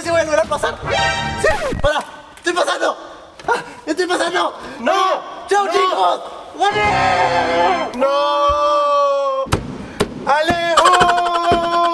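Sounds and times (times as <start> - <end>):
man yelling: 4.0 - 9.5, 10.3 - 11.9.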